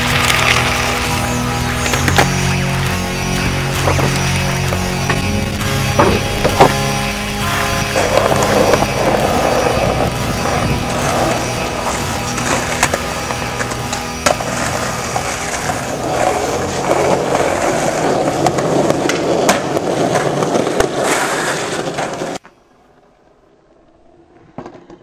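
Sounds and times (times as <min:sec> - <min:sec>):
music: 0:00.0 - 0:19.3
skateboard clacks: 0:00.0 - 0:22.6, 0:24.0 - 0:25.0
skateboard wheels rolling on concrete: 0:00.0 - 0:25.0.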